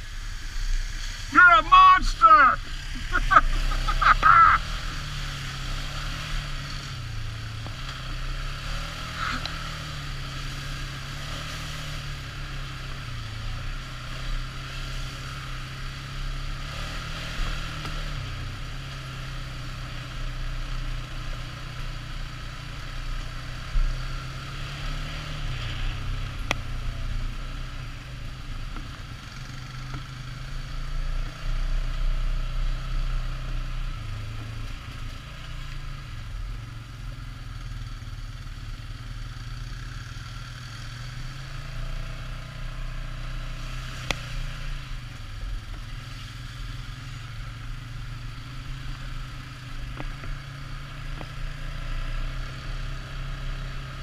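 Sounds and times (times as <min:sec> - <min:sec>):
atv engine revving: 0:00.0 - 0:54.0.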